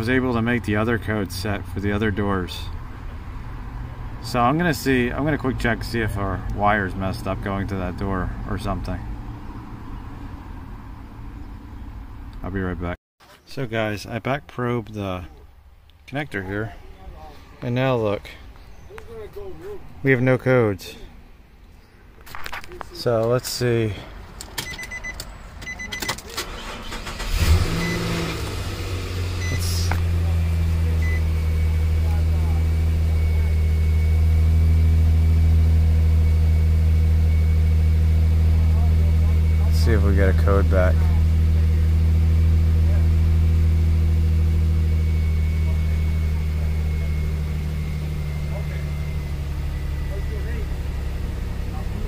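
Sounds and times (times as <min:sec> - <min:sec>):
engine cranking: 0:24.4 - 0:29.7
engine idling: 0:26.4 - 0:52.0.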